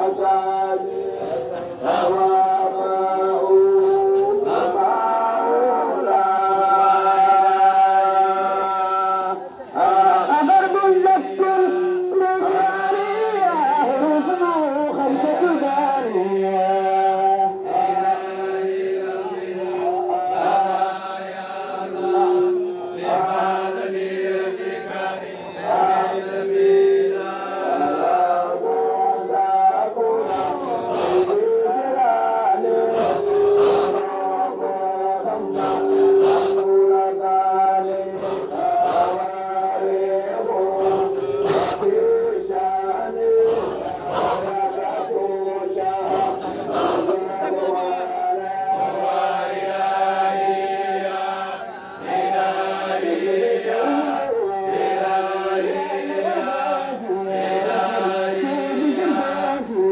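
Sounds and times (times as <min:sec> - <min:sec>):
men chanting together: 0:00.0 - 0:59.9.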